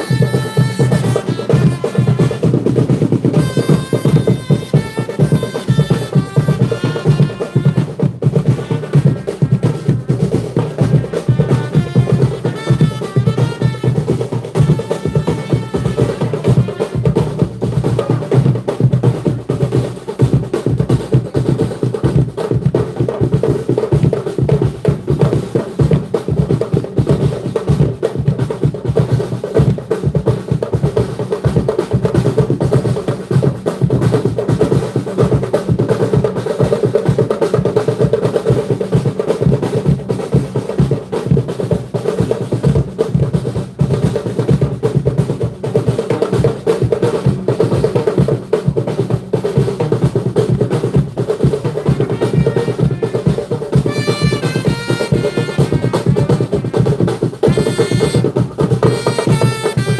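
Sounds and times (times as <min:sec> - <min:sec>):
bass drum: 0:00.0 - 0:59.9
snare rolls: 0:51.4 - 0:59.9.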